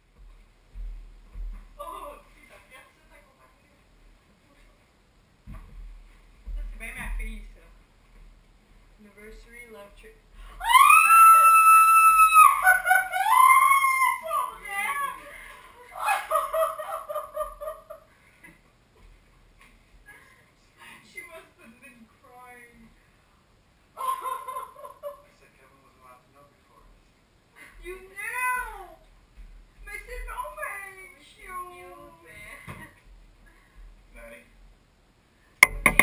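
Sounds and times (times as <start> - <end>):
woman shrieking with excitement: 10.6 - 15.2.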